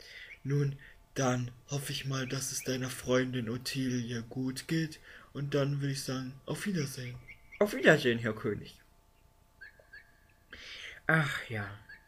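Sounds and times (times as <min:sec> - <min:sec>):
sharp intake of breath: 0:00.0 - 0:01.0, 0:05.0 - 0:05.3, 0:10.5 - 0:11.0
small bird chirping: 0:00.1 - 0:00.7, 0:01.7 - 0:04.7, 0:06.5 - 0:10.6, 0:11.2 - 0:12.0.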